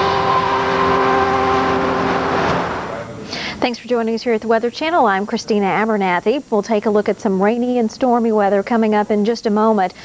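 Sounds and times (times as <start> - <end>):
held synthesizer chord: 0.0 - 3.3
rushing noise wash: 0.0 - 3.3.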